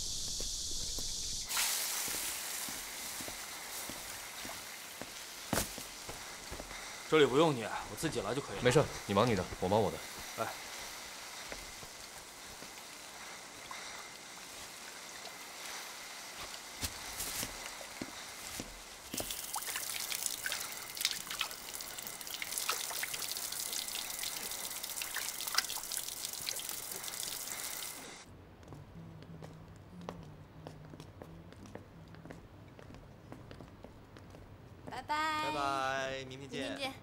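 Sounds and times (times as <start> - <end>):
small knocks and splashes: 19.1 - 27.6
tap water running into sink: 19.1 - 28.0.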